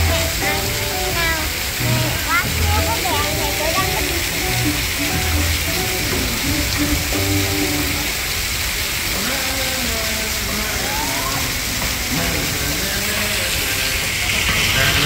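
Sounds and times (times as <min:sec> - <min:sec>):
background music: 0:00.0 - 0:08.2
voices: 0:00.0 - 0:15.0
water jets splashing: 0:00.0 - 0:15.0.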